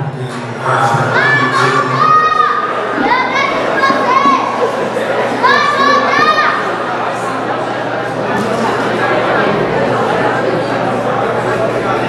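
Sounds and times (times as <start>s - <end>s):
crowd murmur: 0.0s - 12.0s
spectators shouting high-pitched calls: 1.0s - 7.3s.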